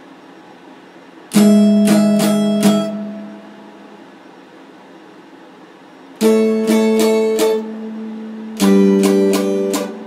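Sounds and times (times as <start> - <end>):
electric guitar chords picked: 1.3 - 4.0, 6.2 - 10.0.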